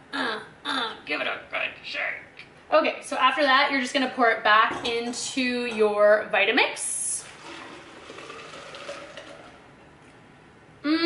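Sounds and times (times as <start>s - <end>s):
liquid pouring into blender jar: 7.2s - 9.6s.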